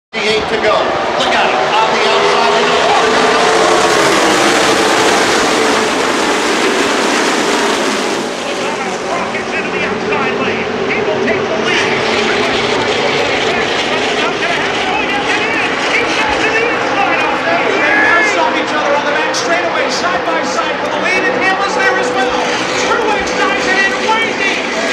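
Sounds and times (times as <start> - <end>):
crowd voices: 0.1 - 24.9
race car engines roaring: 0.1 - 24.9.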